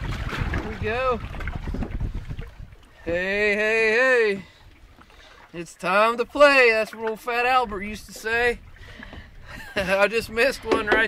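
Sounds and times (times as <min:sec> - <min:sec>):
wind rumble on microphone: 0:00.0 - 0:03.6, 0:07.6 - 0:11.0.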